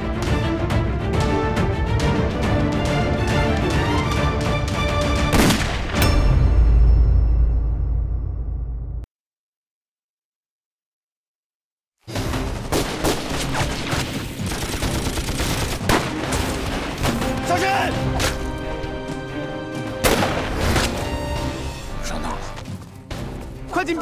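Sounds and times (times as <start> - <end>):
background music: 0.0 - 9.1, 12.1 - 24.0
gunfire: 5.2 - 6.0, 12.1 - 17.5, 20.0 - 21.0
person shouting a warning: 17.4 - 18.0.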